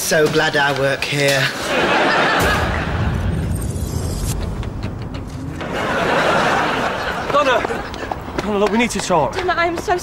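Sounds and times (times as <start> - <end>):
studio audience laughing: 1.4 - 3.2, 5.6 - 8.2.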